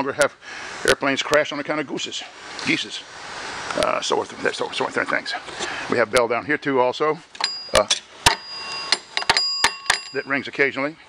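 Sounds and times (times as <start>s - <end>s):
small metal bell ringing: 7.4s - 10.5s.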